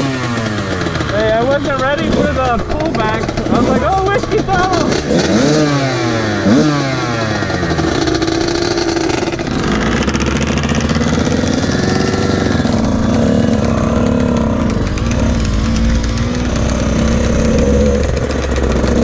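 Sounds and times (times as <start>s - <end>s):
dirt bike and quad engines: 0.0s - 19.0s.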